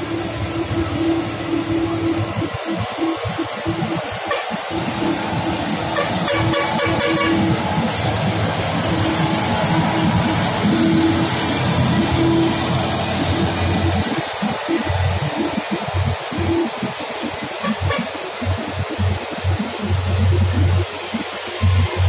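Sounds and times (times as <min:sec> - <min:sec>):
diesel truck engine pulling uphill: 0:00.0 - 0:22.0.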